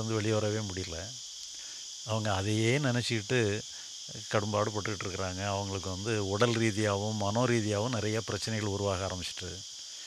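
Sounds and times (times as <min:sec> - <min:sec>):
man speaking: 0:00.0 - 0:01.1, 0:02.1 - 0:09.6
insects chirring: 0:00.0 - 0:10.0.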